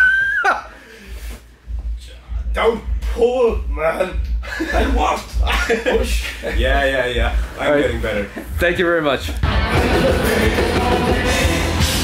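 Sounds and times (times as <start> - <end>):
man laughing with high squeal: 0.0 - 0.8.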